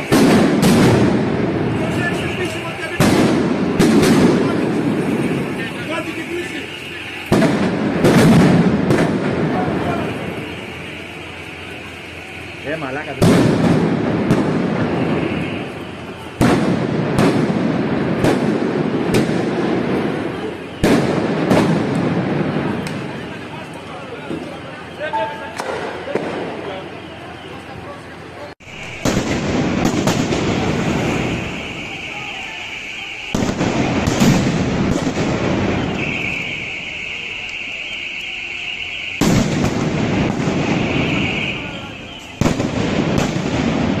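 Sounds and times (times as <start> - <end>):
shouting voices: 0.0 - 16.4, 19.5 - 44.0
sharp crack: 0.0 - 23.5, 25.5 - 26.7, 28.6 - 44.0
loud explosive bangs: 0.0 - 24.6, 25.4 - 27.1, 28.6 - 44.0
echoing blast rumble: 0.0 - 27.2, 28.6 - 44.0.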